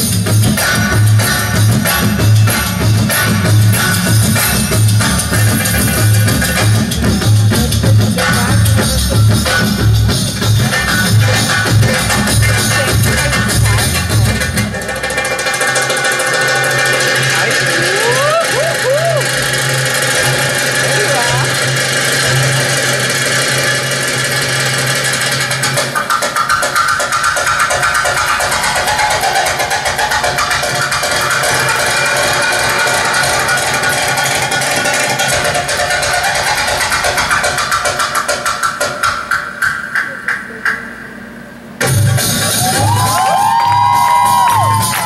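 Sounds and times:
belly-dance music: 0.0 - 41.2, 41.8 - 45.0.

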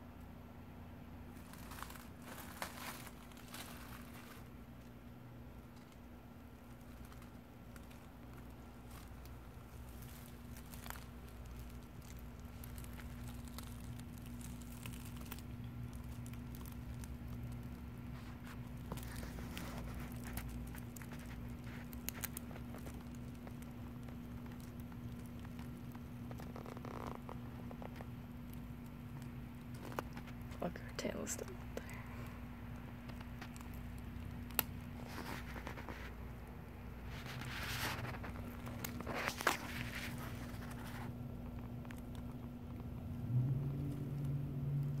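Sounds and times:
dry leaves crackling: 1.2 - 45.0
gravel shifting: 1.3 - 30.8, 31.4 - 45.0.

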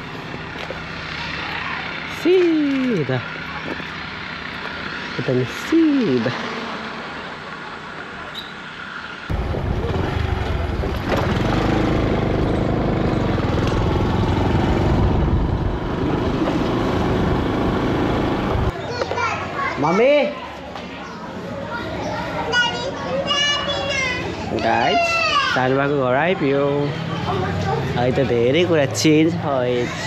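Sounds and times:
wind and road rumble: 9.3 - 19.3
people's voices: 18.8 - 30.0
child calling: 21.8 - 25.6.

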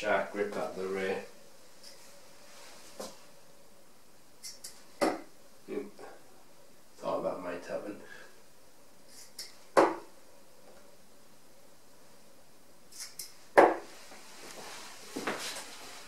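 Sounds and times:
darts thudding into dartboard: 5.0 - 5.3, 9.7 - 10.1, 13.6 - 13.8.

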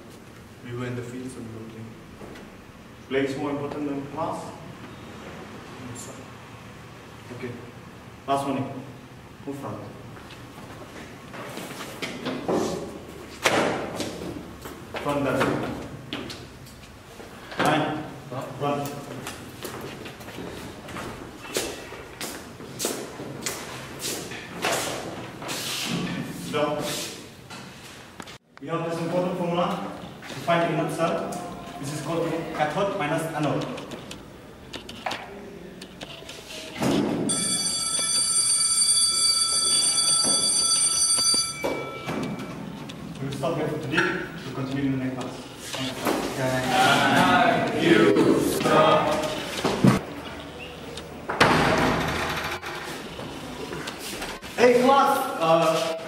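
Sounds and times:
electric school bell ringing: 37.3 - 42.6
wooden desks knocking: 51.3 - 53.4
loud desk slam: 51.4 - 52.3.

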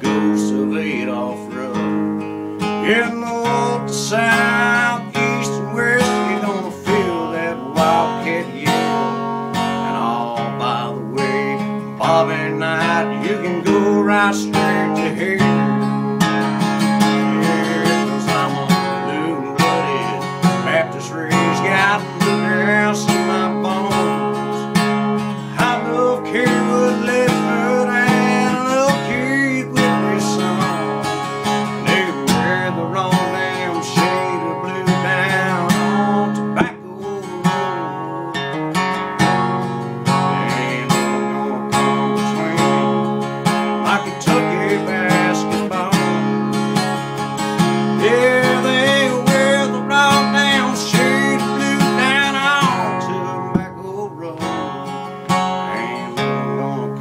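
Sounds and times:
acoustic guitar strumming: 0.0 - 57.0
man singing wordless melody: 0.0 - 57.0.

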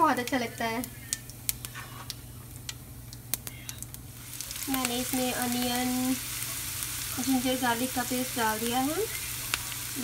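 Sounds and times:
seeds crackling in hot oil: 0.0 - 10.0.

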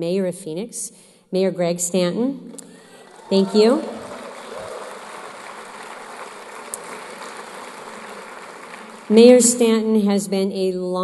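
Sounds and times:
audience applauding: 2.8 - 9.6.

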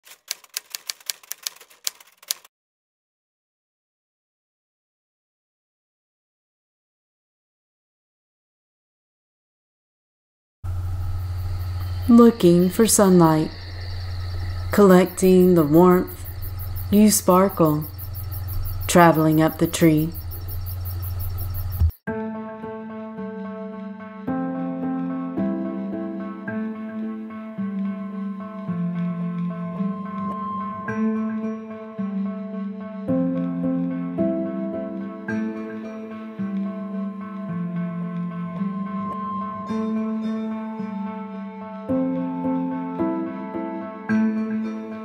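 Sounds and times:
typewriter keys clacking: 0.0 - 2.5
steady low hum: 10.7 - 21.9
insects chirping: 10.7 - 22.0.

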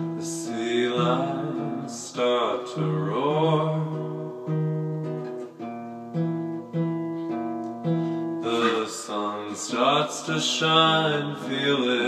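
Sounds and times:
person singing: 0.0 - 4.6, 8.4 - 12.0
acoustic guitar chords: 0.0 - 12.0.

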